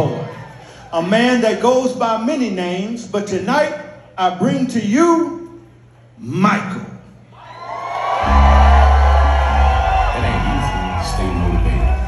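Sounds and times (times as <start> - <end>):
crowd cheering and whooping: 7.3 - 12.0
bass-heavy music: 8.2 - 12.0.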